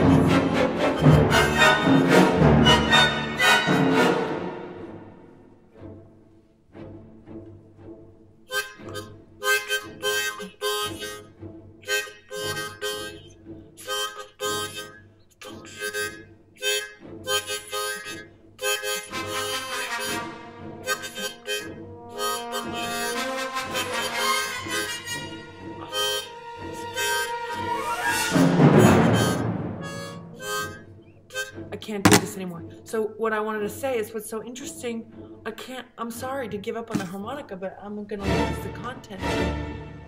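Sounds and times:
harmonica chord bursts: 0:00.0 - 0:05.0, 0:08.5 - 0:33.0.

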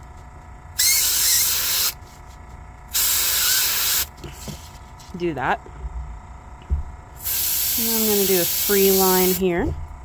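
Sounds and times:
airbrush spraying paint: 0:00.8 - 0:02.0, 0:02.9 - 0:04.1, 0:07.2 - 0:09.4.

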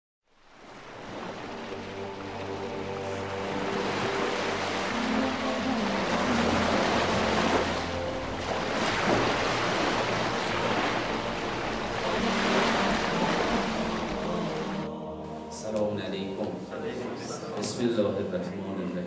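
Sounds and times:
sea waves washing ashore: 0:00.3 - 0:16.0
faint music: 0:01.2 - 0:19.0.

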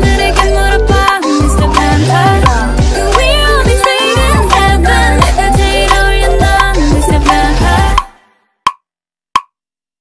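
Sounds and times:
song music: 0:00.0 - 0:08.3.

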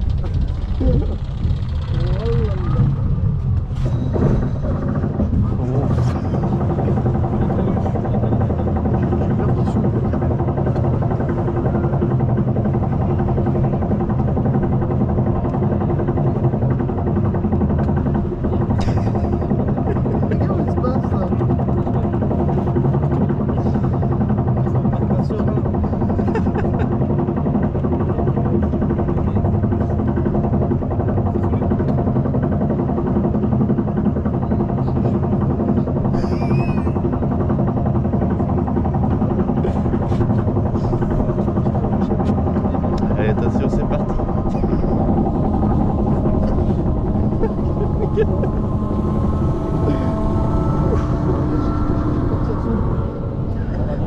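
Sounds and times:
roller coaster mechanical drone: 0:00.0 - 0:54.0.

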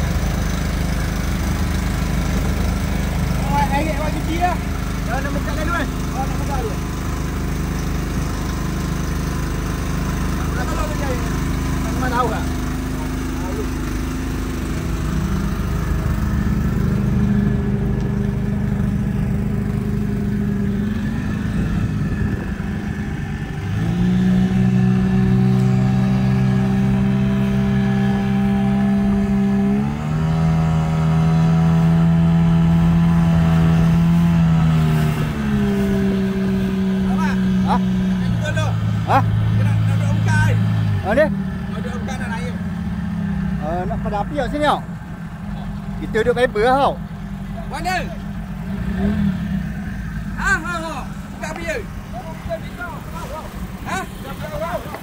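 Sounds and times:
outboard motor running: 0:00.0 - 0:55.0.

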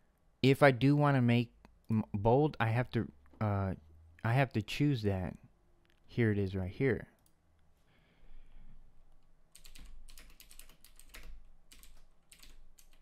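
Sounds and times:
typing on a computer keyboard: 0:09.5 - 0:13.0.

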